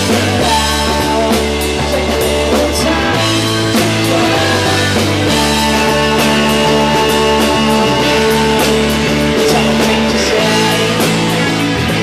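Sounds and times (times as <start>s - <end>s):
loud rock music: 0.0s - 12.0s.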